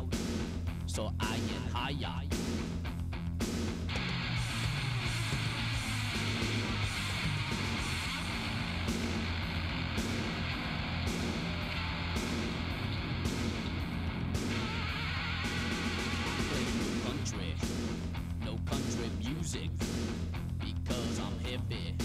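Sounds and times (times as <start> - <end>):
heavy metal electric guitar riffing: 3.9 - 21.7.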